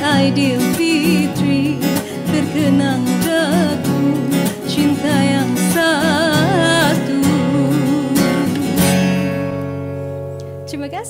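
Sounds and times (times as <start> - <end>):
woman singing with vibrato: 0.0 - 9.1
acoustic guitar chord ringing: 0.0 - 11.0.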